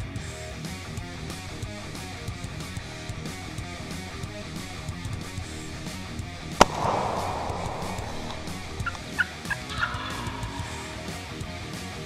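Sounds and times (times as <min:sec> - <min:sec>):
sharp crack: 0:00.9 - 0:10.7
turkey gobbling: 0:08.8 - 0:10.7.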